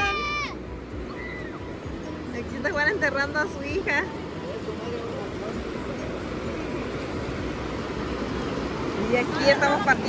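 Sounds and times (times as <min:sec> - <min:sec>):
faint voices: 0:00.0 - 0:10.0
ocean surf breaking on beach: 0:00.0 - 0:10.0.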